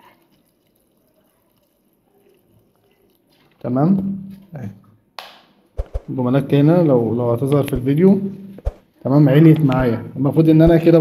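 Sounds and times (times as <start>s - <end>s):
liquid trickling into bottle: 0.0s - 3.7s.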